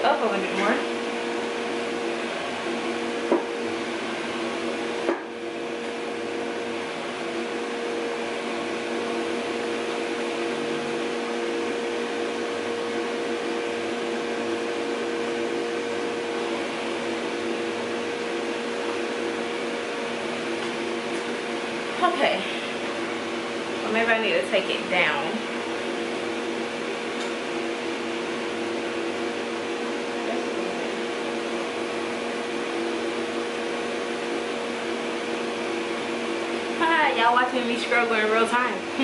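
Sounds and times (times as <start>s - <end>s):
hair dryer blower humming: 0.0s - 39.0s.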